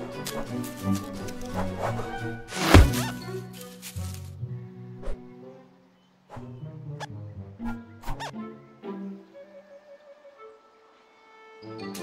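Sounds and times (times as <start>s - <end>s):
orchestral film music: 0.0s - 12.0s
sharp hits: 2.5s - 3.2s.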